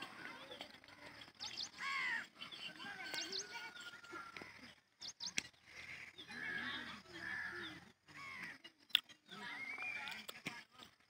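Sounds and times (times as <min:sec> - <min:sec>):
birds chirping and calling: 0:00.0 - 0:11.0.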